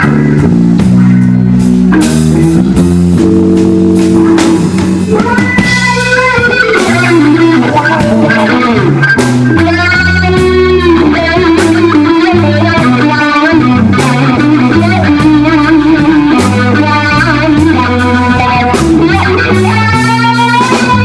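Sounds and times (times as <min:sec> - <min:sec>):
bass line: 0:00.0 - 0:21.0
drums: 0:00.0 - 0:21.0
electric guitar bending notes: 0:00.0 - 0:21.0.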